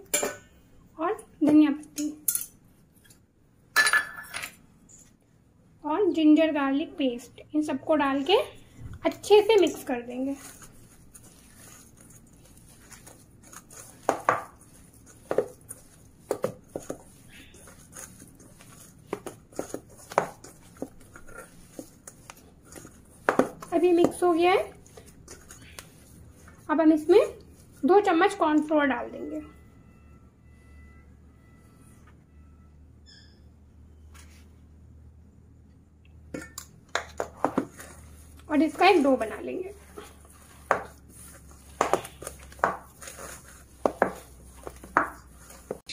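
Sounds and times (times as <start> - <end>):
hands squishing mash: 7.6 - 29.4, 36.5 - 45.9
fingers scraping steel bowl: 9.6 - 26.6.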